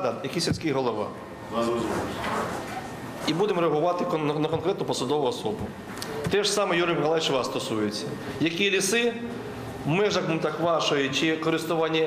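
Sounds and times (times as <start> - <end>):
speech: 0.0 - 2.4, 3.2 - 12.0
meeting hall room noise: 0.0 - 12.0.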